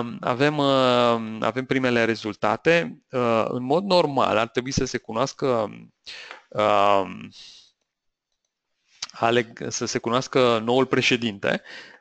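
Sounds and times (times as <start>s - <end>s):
man speaking: 0.0s - 7.6s, 9.0s - 12.0s
short breath: 6.1s - 6.5s, 11.6s - 12.0s.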